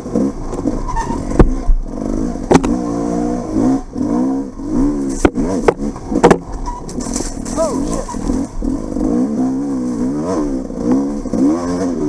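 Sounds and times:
dirt bike engine running: 0.0s - 12.0s
sharp knocks: 2.5s - 2.8s, 5.2s - 7.6s.

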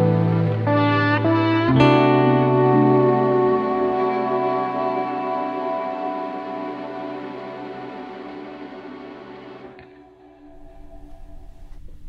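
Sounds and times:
acoustic guitar chord ringing: 0.0s - 9.6s.

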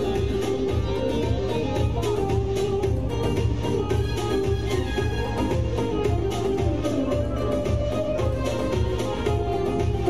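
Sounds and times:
folk dance music on keyboard and lute: 0.0s - 10.0s.

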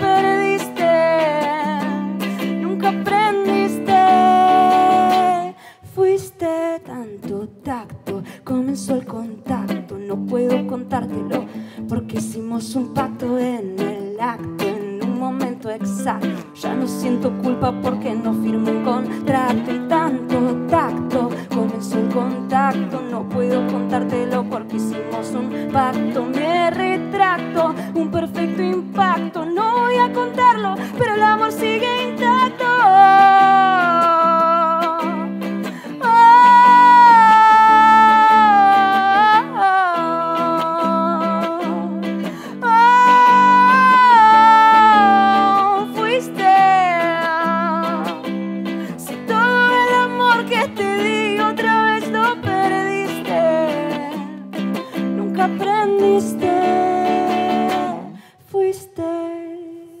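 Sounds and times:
electric guitar chords: 0.0s - 5.8s, 7.1s - 58.3s.

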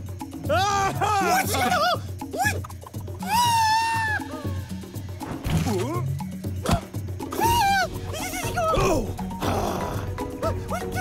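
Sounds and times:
cartoon music with low beat: 0.0s - 11.0s
cartoon monkey voice: 7.3s - 9.1s.

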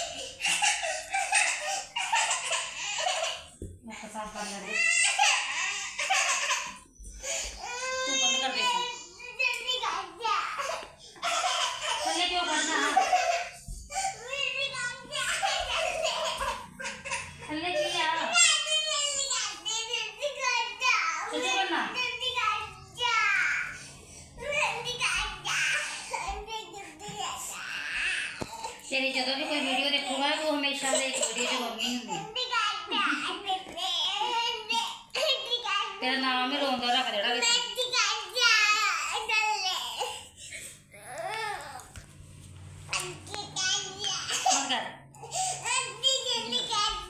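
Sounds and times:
toddler crying: 0.0s - 3.6s, 4.6s - 9.6s, 10.2s - 21.7s, 22.4s - 33.2s, 40.9s - 42.0s.

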